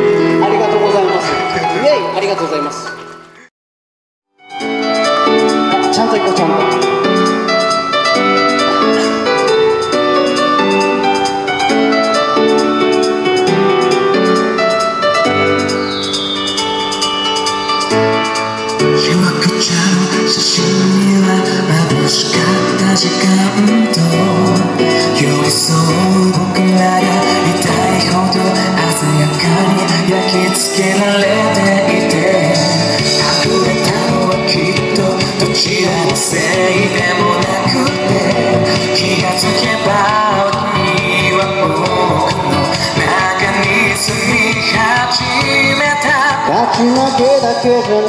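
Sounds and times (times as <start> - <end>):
amplified accompaniment: 0.0 - 3.5, 4.4 - 48.0
men singing pop song: 19.0 - 48.0.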